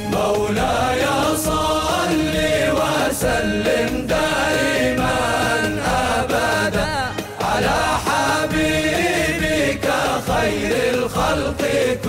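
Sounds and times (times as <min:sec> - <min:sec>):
frame drums beaten: 0:00.0 - 0:12.0
male chorus chanting: 0:00.0 - 0:12.0.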